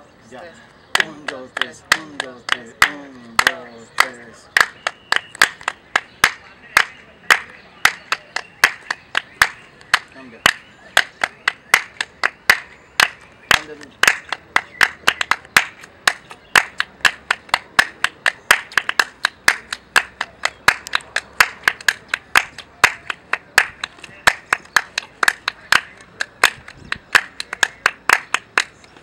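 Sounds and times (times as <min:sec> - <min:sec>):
hand claps in steady rhythm: 0:00.9 - 0:29.0.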